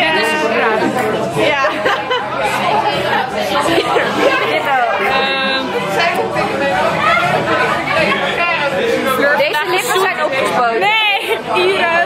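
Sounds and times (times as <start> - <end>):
women talking and exclaiming: 0.0 - 12.0
women laughing: 1.5 - 5.2.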